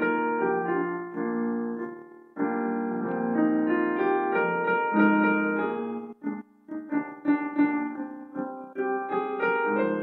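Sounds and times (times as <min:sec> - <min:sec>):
piano chords: 0:00.0 - 0:10.0.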